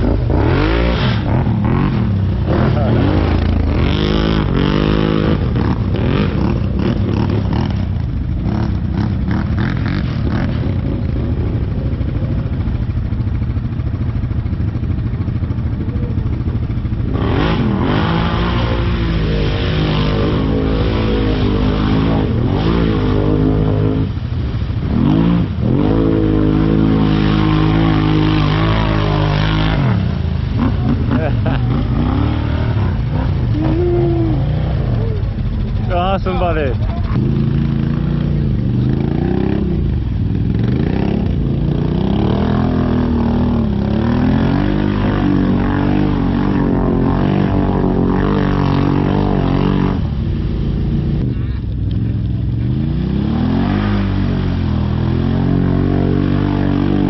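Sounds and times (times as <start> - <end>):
atv engine revving: 0.0 - 57.0.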